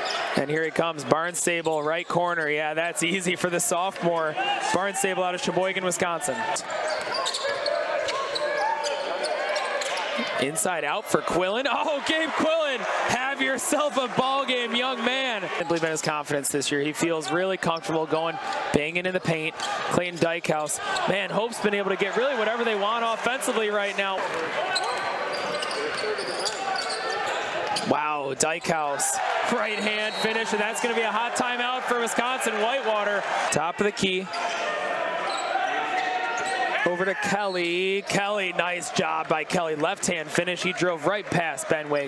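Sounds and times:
murmur of crowd voices: 0.0s - 42.0s
crowd murmuring: 4.4s - 16.3s.

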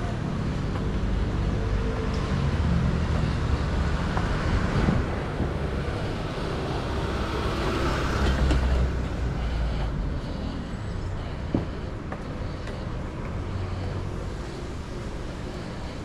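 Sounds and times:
truck engine rumble: 0.0s - 16.0s.

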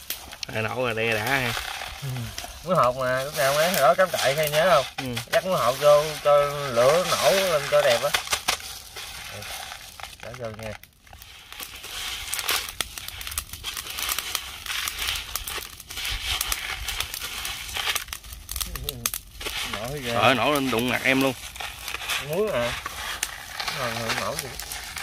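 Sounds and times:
salt crackling and popping on grill: 0.0s - 25.0s.

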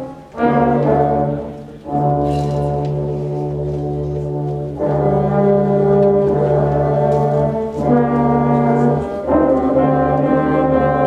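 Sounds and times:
brass band sustained low chords: 0.0s - 11.0s.

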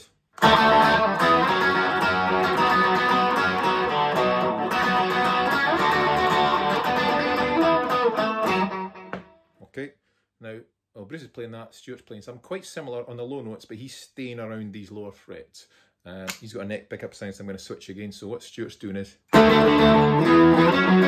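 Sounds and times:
electric guitar riff: 0.4s - 9.4s, 19.3s - 21.0s.

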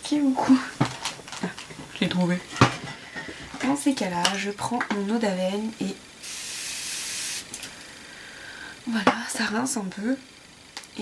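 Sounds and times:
aerosol spray spurts: 6.2s - 7.7s
aerosol spray hissing: 6.2s - 8.8s.

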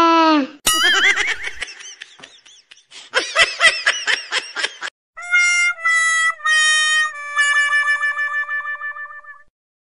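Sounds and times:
high-pitched cartoon voice laughing: 0.7s - 2.0s, 7.6s - 9.4s.

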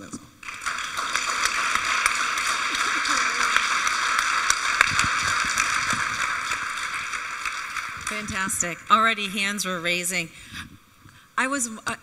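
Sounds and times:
audience applauding: 0.4s - 9.4s.

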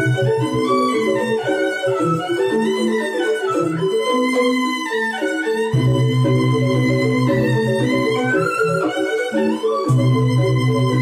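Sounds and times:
bamboo flute melody: 0.0s - 11.0s
bamboo xylophones playing: 0.0s - 11.0s.

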